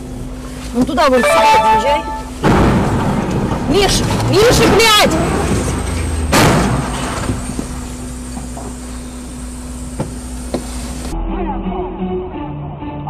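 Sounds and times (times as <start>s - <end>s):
faint hum: 0.0s - 13.0s
low rumble: 2.1s - 9.6s
loud crash: 2.4s - 8.0s.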